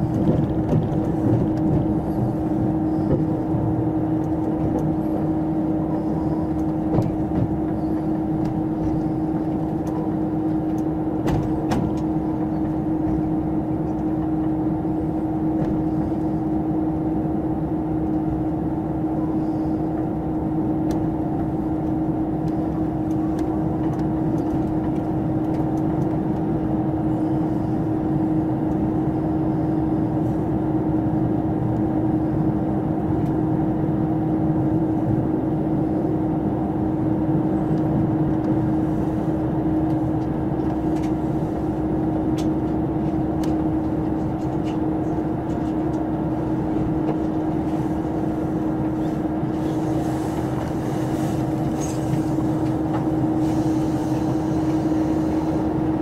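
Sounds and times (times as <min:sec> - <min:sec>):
train cabin rumble: 0:00.0 - 0:56.0.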